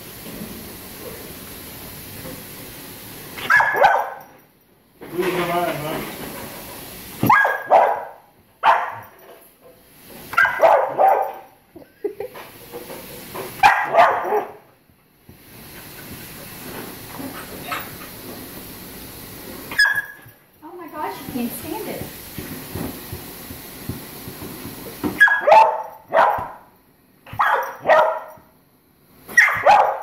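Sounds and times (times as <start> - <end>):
puppy barking: 3.4 - 4.3, 7.2 - 9.1, 10.3 - 11.5, 13.6 - 14.6, 19.7 - 20.2, 25.2 - 26.6, 27.3 - 28.4, 29.3 - 30.0.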